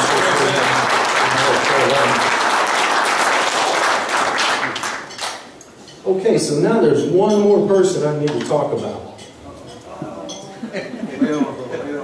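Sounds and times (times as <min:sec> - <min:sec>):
audience applause: 0:00.0 - 0:05.4.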